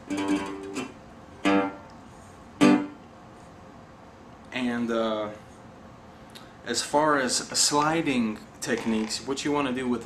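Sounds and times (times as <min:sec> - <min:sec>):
resonator guitar picked notes: 0:00.1 - 0:01.9, 0:02.6 - 0:03.0.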